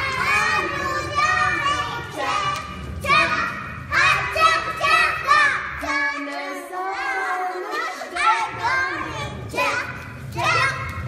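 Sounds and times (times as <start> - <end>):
children talking and calling out: 0.0 - 11.0.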